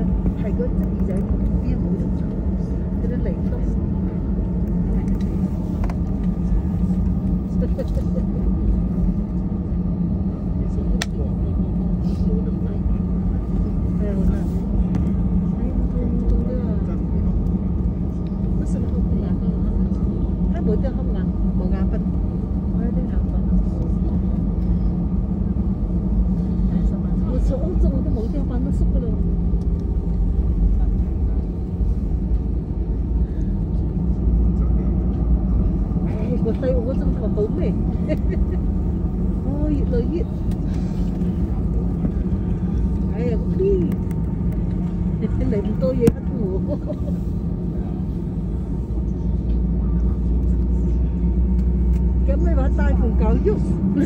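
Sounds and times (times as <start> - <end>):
airliner engine rumble: 0.0 - 54.0
faint passenger voices: 0.0 - 54.0.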